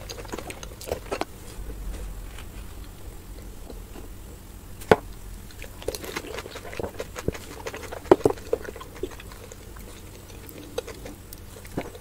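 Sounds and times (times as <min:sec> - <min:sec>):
crisp shells crackling: 0:05.5 - 0:12.0.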